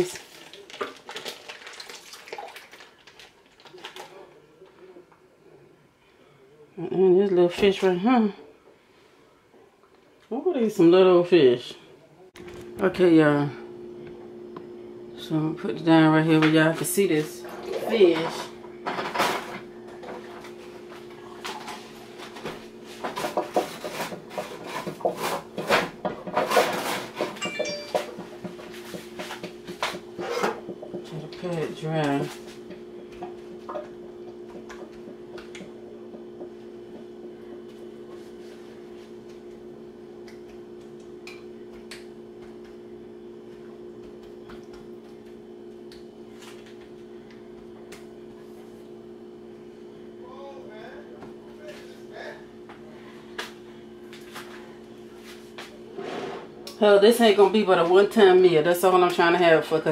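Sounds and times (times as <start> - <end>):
paper towel crinkling: 0.0 - 4.2
steady low hum: 10.8 - 59.9.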